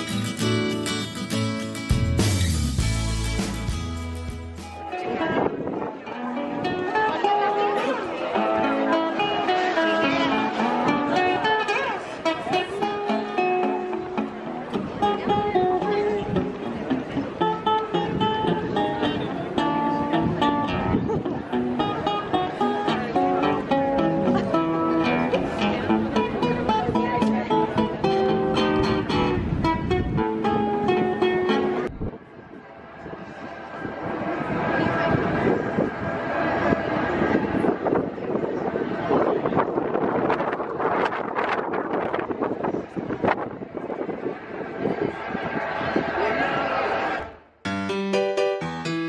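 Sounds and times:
fingerpicked acoustic guitar: 0:00.0 - 0:31.9.

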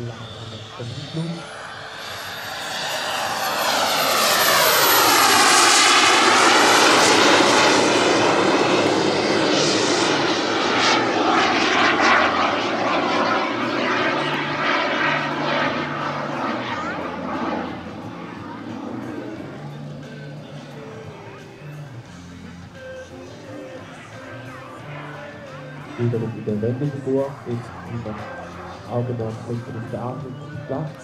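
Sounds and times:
model jet turbine flying past: 0:00.0 - 0:21.5.

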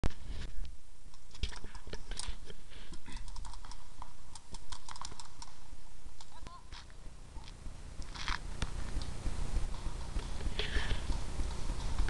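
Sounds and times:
rapid sharp clicks and knocks: 0:02.9 - 0:05.6.

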